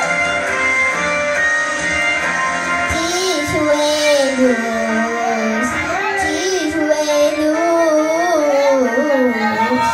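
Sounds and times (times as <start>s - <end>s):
girl singing into microphone: 2.8s - 9.9s.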